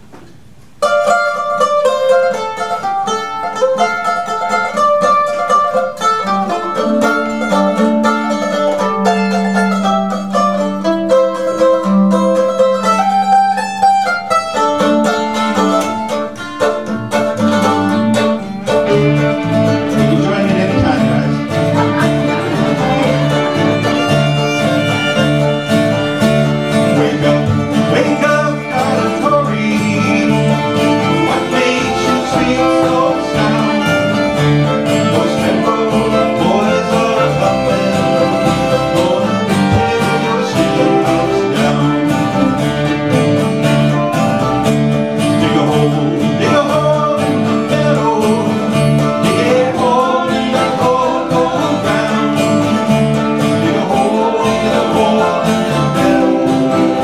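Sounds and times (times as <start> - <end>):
fiddle melody: 0.8 - 57.0
plucked strings: 0.8 - 57.0
upright bass line: 14.3 - 57.0.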